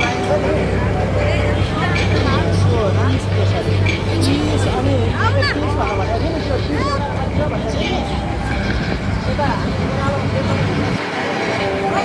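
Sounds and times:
low rumble of traffic: 0.0s - 12.0s
people's voices: 0.0s - 12.0s.

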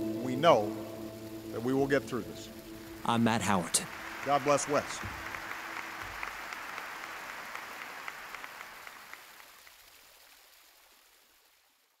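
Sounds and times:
crowd applause: 3.0s - 9.8s.

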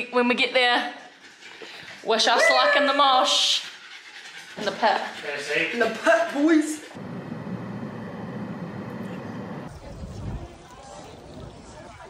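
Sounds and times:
low rumble of traffic: 7.0s - 9.7s.

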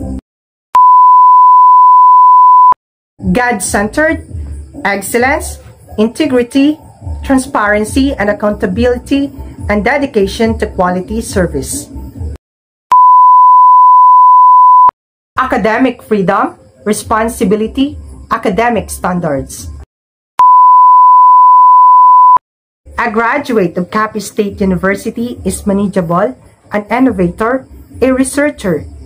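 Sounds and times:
steady electronic beep: 0.8s - 2.8s, 12.9s - 14.9s, 20.4s - 22.4s.

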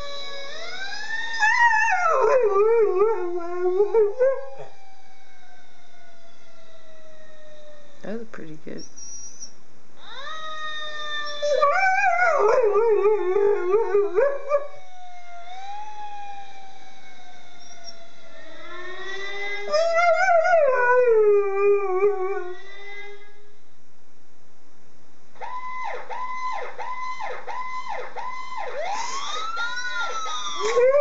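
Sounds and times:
dog howling: 0.0s - 4.9s, 10.0s - 16.8s, 17.6s - 23.3s, 28.9s - 31.0s.

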